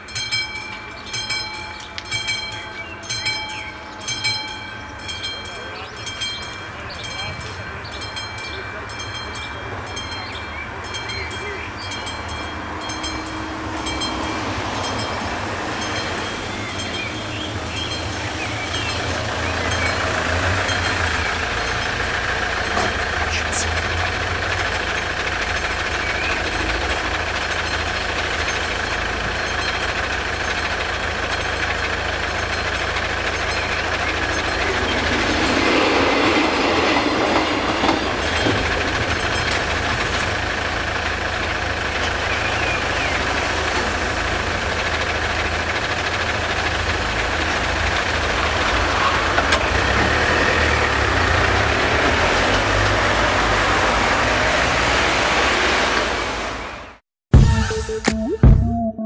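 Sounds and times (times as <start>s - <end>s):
crossing warning bell ringing: 0.0s - 56.1s
vehicles idling: 0.0s - 57.0s.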